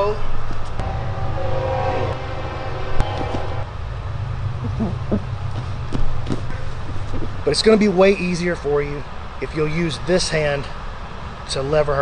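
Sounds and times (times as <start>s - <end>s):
low hum: 0.0s - 7.4s.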